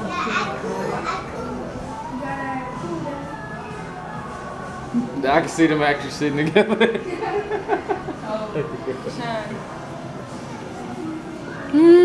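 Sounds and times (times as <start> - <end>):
child's voice: 0.0 - 3.4
people talking: 0.0 - 4.0.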